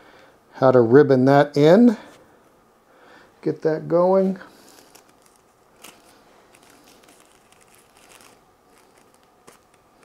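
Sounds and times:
paper crinkling and rustling: 4.5 - 10.0.

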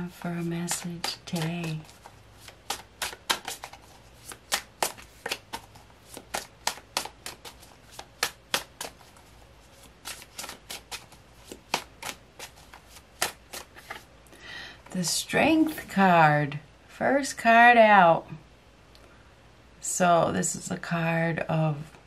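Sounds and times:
cards being shuffled: 0.0 - 14.1.

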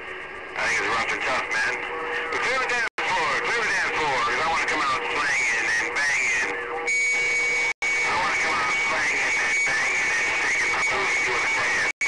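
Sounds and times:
radio static: 0.0 - 12.0
garbled distant radio voices: 0.4 - 6.8, 8.0 - 11.9.

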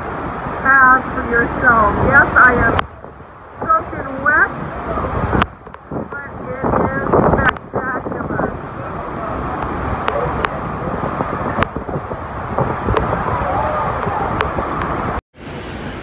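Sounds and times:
waterfall roaring: 0.0 - 16.0
wind on microphone: 0.0 - 16.0
faint voices: 6.1 - 11.8.

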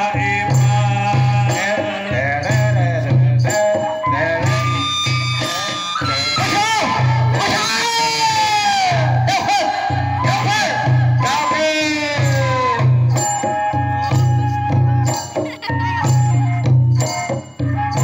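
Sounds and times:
low drum beat: 0.0 - 5.4, 8.3 - 18.0.

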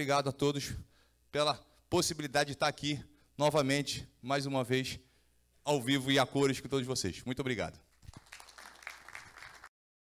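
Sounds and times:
faint audience applause: 8.0 - 9.7.

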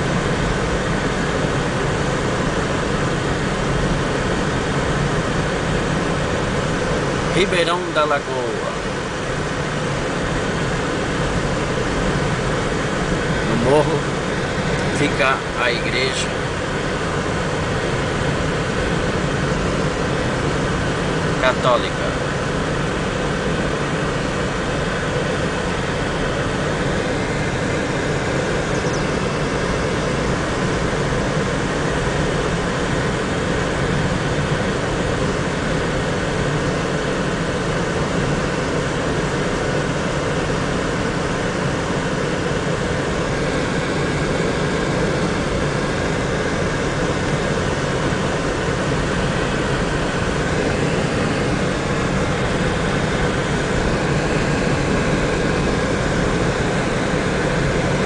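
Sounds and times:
car engine and tyres on road: 0.0 - 58.0.

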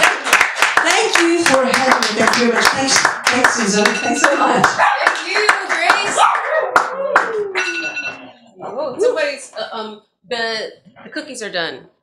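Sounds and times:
audience clapping: 0.0 - 7.8.

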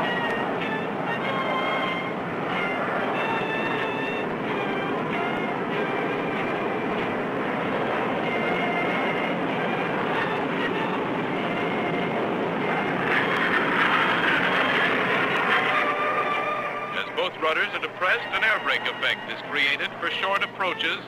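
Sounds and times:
jet engines roaring in flyby: 0.0 - 21.0.

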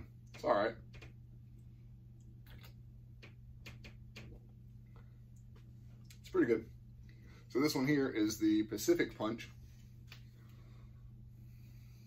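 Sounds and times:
steady low hum: 0.0 - 12.0
swallowing and lip sounds: 2.4 - 2.8.

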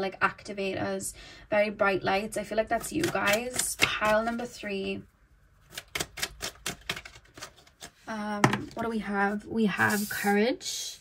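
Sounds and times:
cards being shuffled: 5.6 - 8.7.

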